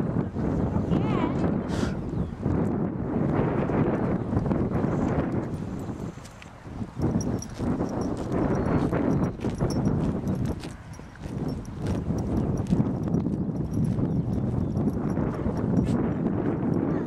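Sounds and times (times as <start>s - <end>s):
wind on microphone: 0.0s - 17.0s
pony hoofbeats on grass: 4.4s - 16.9s.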